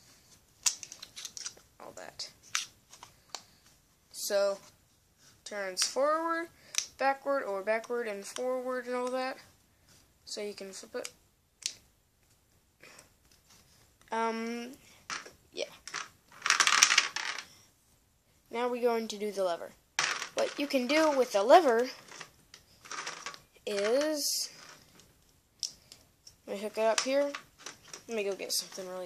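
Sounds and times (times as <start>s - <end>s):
plastic clattering: 0.6s - 1.6s, 20.0s - 25.0s, 26.9s - 28.1s
small plastic clicks: 0.6s - 1.6s.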